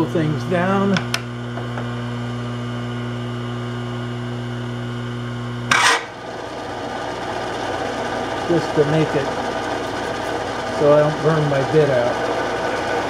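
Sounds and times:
drilling machine motor humming: 0:00.0 - 0:13.0.

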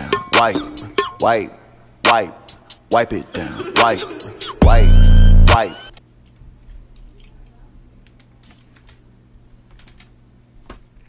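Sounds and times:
steady low hum: 0:01.3 - 0:06.9.

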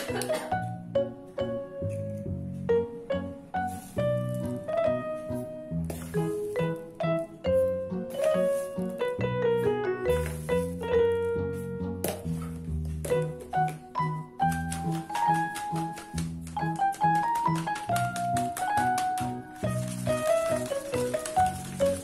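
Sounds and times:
piano-like melody: 0:00.0 - 0:22.0.

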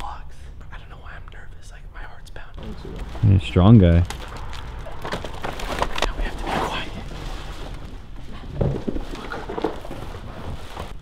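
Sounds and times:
plastic bag crinkling: 0:02.6 - 0:10.9.

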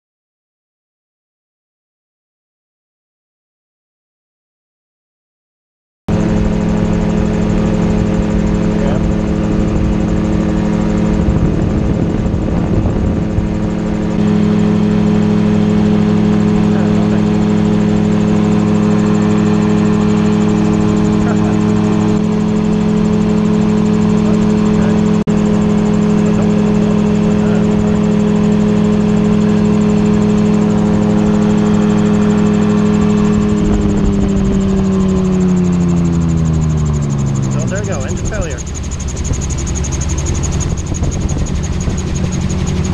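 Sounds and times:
autogyro engine and propeller: 0:06.1 - 0:42.9.

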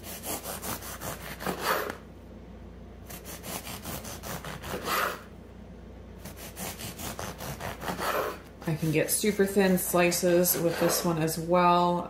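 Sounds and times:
knife sawing through bread: 0:00.0 - 0:02.0, 0:03.1 - 0:05.3, 0:06.2 - 0:11.3.

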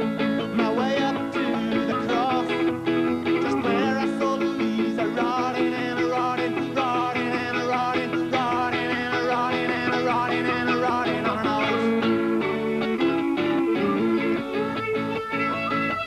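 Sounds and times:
folk-rock music with guitar: 0:00.0 - 0:16.0.

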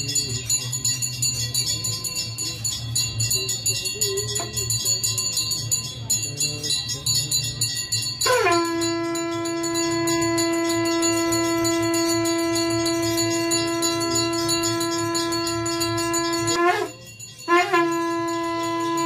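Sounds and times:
small bells ringing: 0:00.0 - 0:19.0
conch shell blown: 0:08.2 - 0:19.0.

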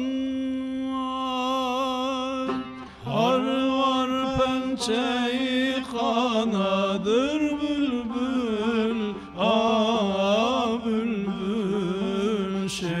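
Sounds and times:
man singing folk song: 0:00.0 - 0:13.0
plucked lute: 0:00.0 - 0:13.0.

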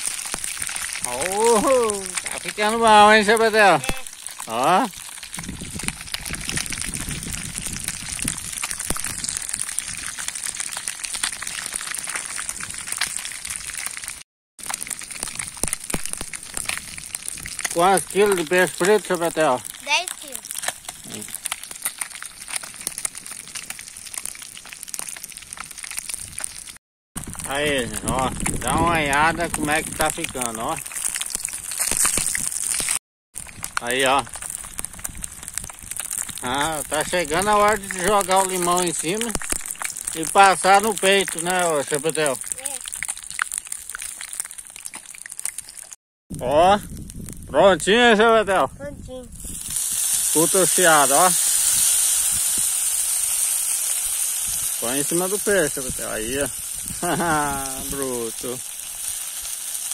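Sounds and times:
fish sizzling in oil: 0:00.0 - 0:46.0, 0:49.3 - 0:59.9.

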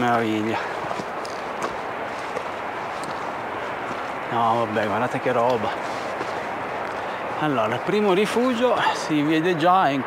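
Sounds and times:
footsteps on gravel: 0:00.0 - 0:08.4
steady rushing noise: 0:00.0 - 0:10.0.

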